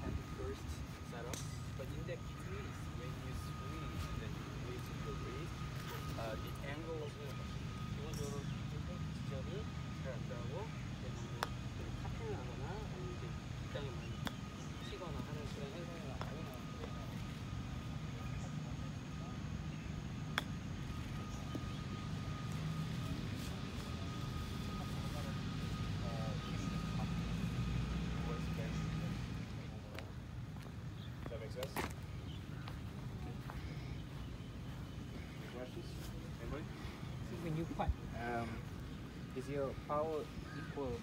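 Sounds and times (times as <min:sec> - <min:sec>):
faint chatter of people: 0:00.0 - 0:41.0.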